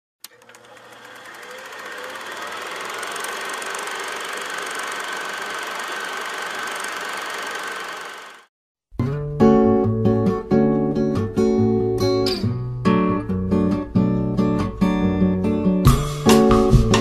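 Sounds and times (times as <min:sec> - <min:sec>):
projector click: 0:00.2 - 0:04.6
film projector whirring: 0:00.2 - 0:08.5.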